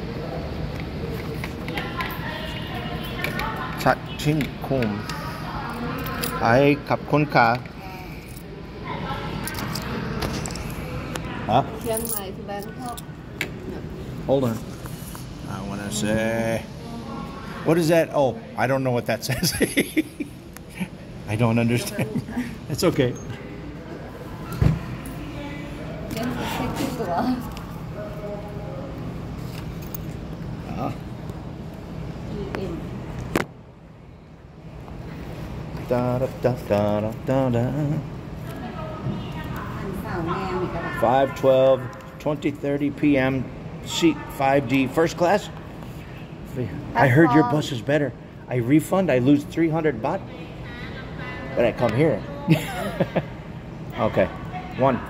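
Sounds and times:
quiet talk: 0.0 - 18.6, 20.0 - 31.1.

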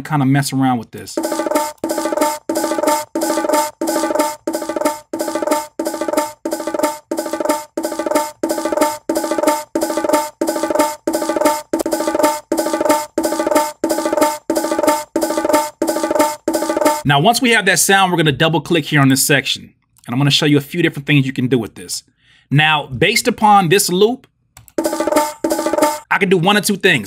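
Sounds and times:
looped bongo hits: 1.2 - 17.1, 24.7 - 26.1.

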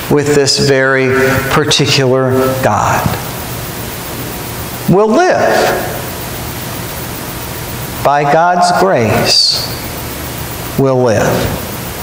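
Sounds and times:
man speaking: 0.0 - 3.4, 4.9 - 6.2, 8.0 - 9.9, 10.8 - 11.8
background hiss: 0.0 - 12.0.

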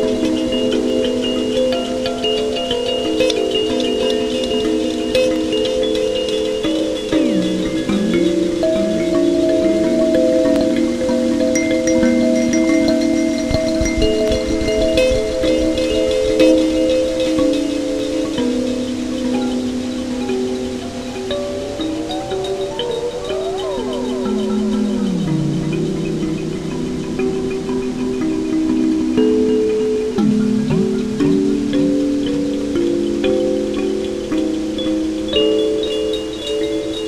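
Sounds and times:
electric kalimba with delay: 0.0 - 37.0.

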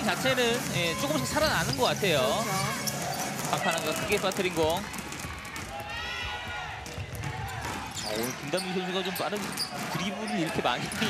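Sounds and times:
basketball dribbling on hardwood: 3.2 - 5.9.

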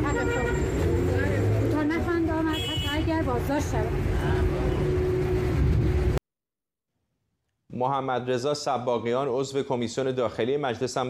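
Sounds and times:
faint voices of passers-by: 0.0 - 5.6
low traffic rumble: 0.0 - 6.2.

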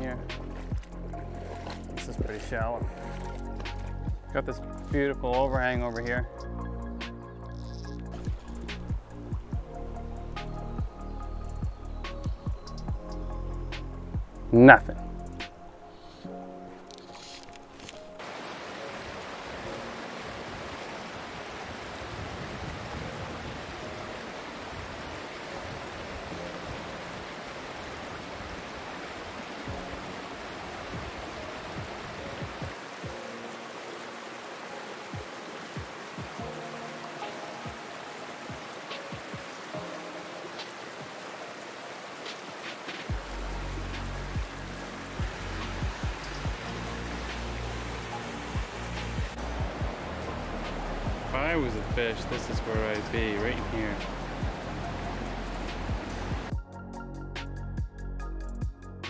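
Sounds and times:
stream water rushing: 0.0 - 6.3, 7.0 - 12.5, 13.6 - 56.6
background music: 0.0 - 59.0
deep bass beat: 2.0 - 7.0, 7.9 - 15.4, 43.1 - 48.0, 48.6 - 56.7.

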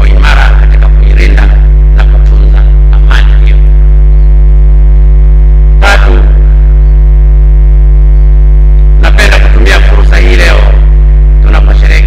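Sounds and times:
man's voice: 0.0 - 3.9, 5.8 - 6.6, 9.0 - 12.0
electrical mains hum: 0.0 - 12.0.

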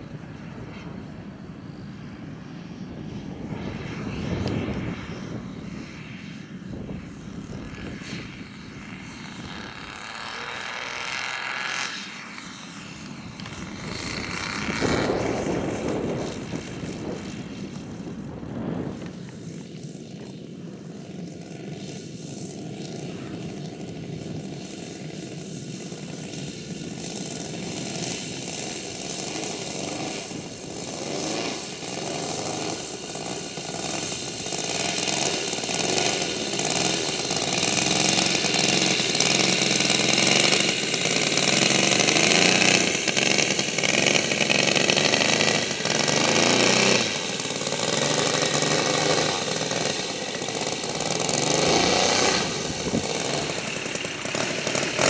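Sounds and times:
model plane engine at low throttle: 0.0 - 55.0.

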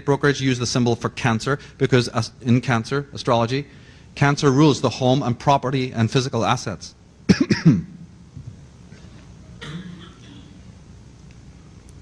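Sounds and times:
person coughing: 7.3 - 8.0, 9.6 - 10.6.

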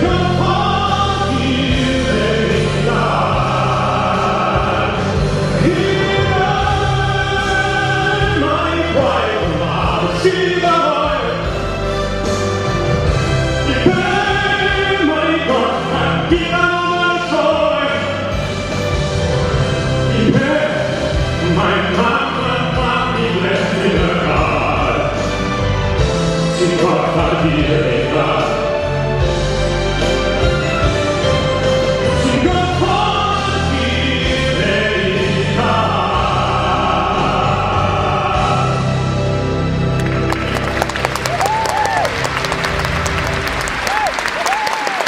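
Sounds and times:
choir-like voices: 0.0 - 11.5, 32.1 - 39.6
man singing into a microphone: 0.0 - 11.6, 13.6 - 18.4, 20.1 - 25.4, 26.6 - 28.8, 32.0 - 39.1
backing music: 0.0 - 45.0.

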